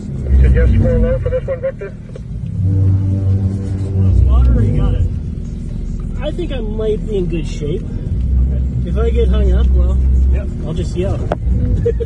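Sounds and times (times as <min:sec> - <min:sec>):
car engine pulling at low revs: 0:00.0 - 0:12.0.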